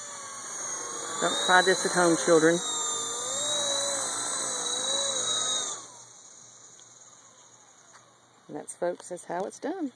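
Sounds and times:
rc helicopter motors whining: 0.0 - 9.9.

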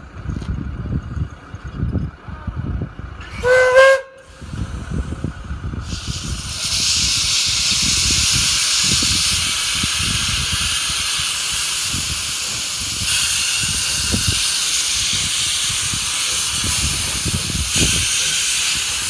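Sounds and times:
steam locomotive rumble: 0.0 - 19.0
steam hissing: 3.2 - 19.0.

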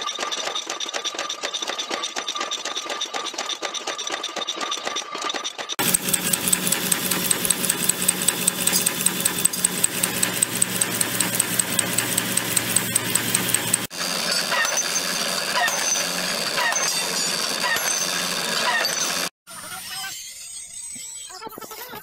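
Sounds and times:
light machine rattle: 0.0 - 19.3
press machine ticking: 5.8 - 13.9
machine hum: 5.8 - 19.3.

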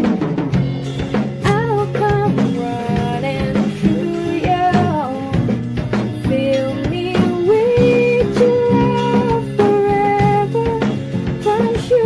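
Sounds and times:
drum kit beat: 0.0 - 12.0
strummed acoustic guitar: 0.0 - 12.0
woman singing a ballad: 1.4 - 12.0.

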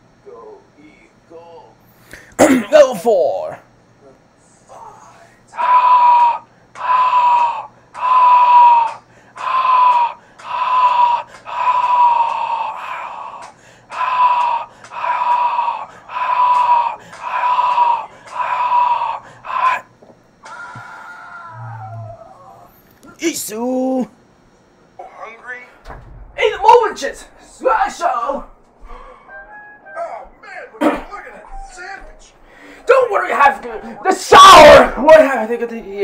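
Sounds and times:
man yelling high-pitched: 2.4 - 3.6, 5.5 - 19.9, 26.4 - 28.4, 30.0 - 32.1, 32.9 - 36.0.

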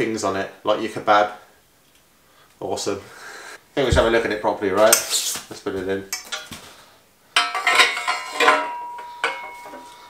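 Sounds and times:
metal bike parts clanking: 6.1 - 6.7, 7.4 - 10.0
thin ringing tone: 7.4 - 10.0.

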